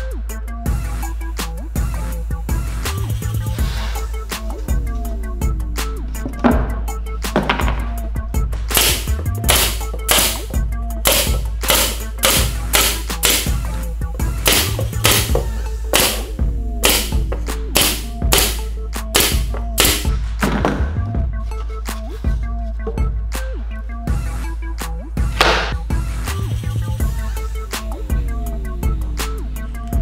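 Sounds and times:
background music: 0.0s - 30.0s
nail gun firing into plywood: 8.7s - 13.6s, 14.4s - 17.2s, 17.8s - 20.2s, 25.4s - 25.8s.

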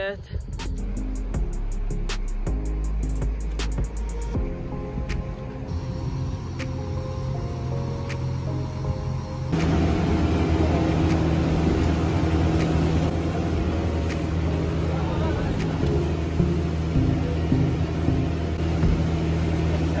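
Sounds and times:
wind: 0.0s - 20.0s
boat engine droning: 4.2s - 20.0s
water rushing from wake: 9.6s - 20.0s.

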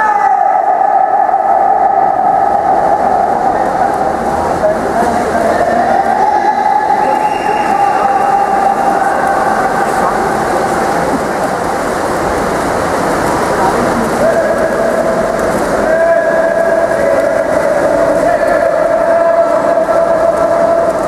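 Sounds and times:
voices: 0.0s - 21.0s
water splashing: 0.0s - 21.0s.

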